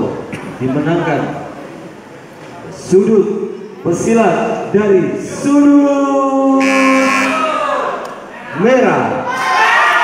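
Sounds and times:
man announcing drawn-out syllable: 5.9s - 7.6s.

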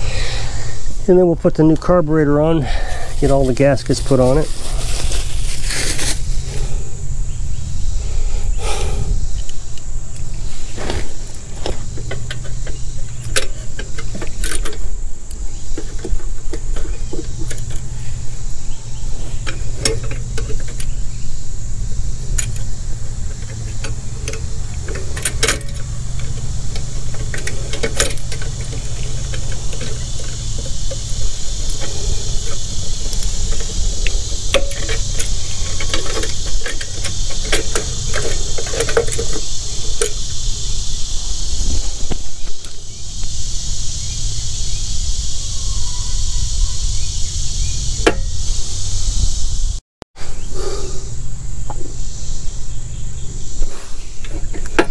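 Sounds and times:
steady low rumble: 0.0s - 49.8s
steady high hiss: 0.0s - 54.9s.

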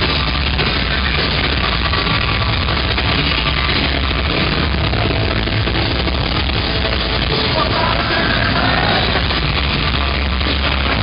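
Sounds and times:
punk rock band playing loud: 0.0s - 11.0s.

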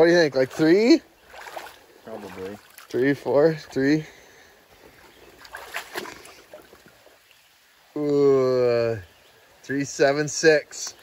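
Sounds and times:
faint river water: 0.0s - 11.0s
short splashes and knocks: 0.4s - 3.8s, 4.8s - 7.2s.

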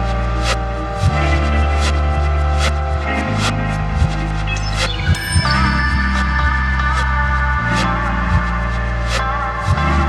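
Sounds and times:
low bass drone: 0.0s - 10.0s.

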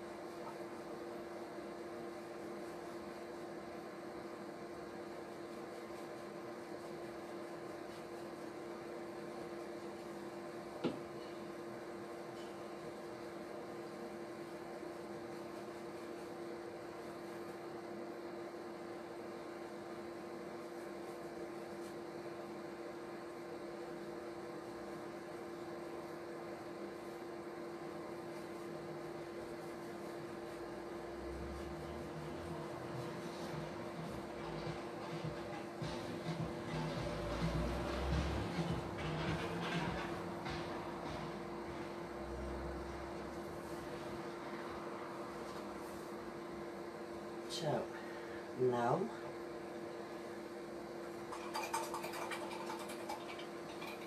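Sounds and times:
steady electrical hum: 0.0s - 54.0s.

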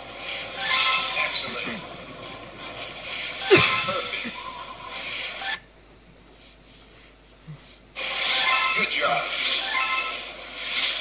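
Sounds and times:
constant hiss: 0.0s - 11.0s
pitched voice-like game sounds: 1.3s - 2.0s.

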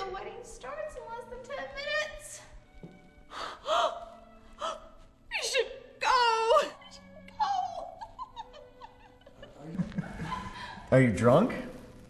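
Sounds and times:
quiet background music: 0.0s - 12.0s
woman gasping and crying out: 3.3s - 5.1s.

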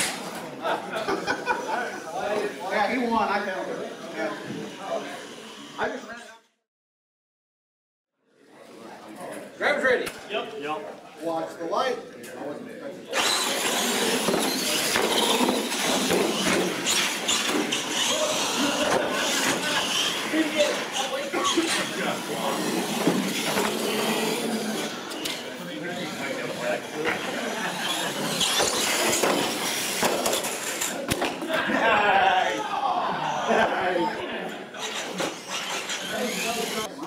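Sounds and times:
chatter of people: 0.0s - 6.5s, 8.2s - 37.0s
toy truck motors and tires: 3.0s - 6.0s, 13.1s - 31.0s, 34.8s - 37.0s.

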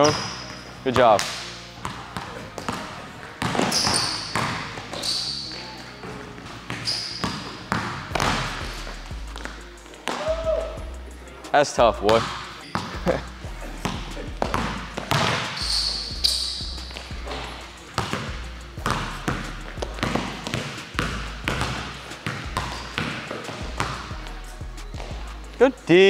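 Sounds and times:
high shoe squeak: 0.0s - 0.8s, 3.4s - 8.4s, 14.4s - 18.2s, 21.6s - 24.0s
basketball bouncing on wooden floor: 1.1s - 5.1s, 6.7s - 8.8s, 12.2s - 13.2s, 13.8s - 16.0s, 16.6s - 24.1s.

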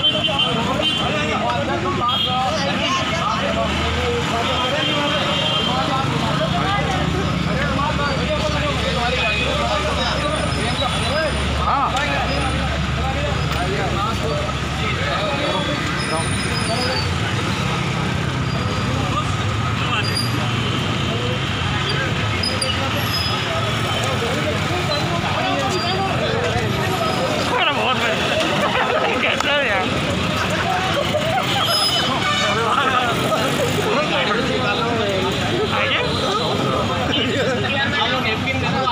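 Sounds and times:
people talking at once: 0.0s - 38.9s
street traffic noise: 0.0s - 38.9s.

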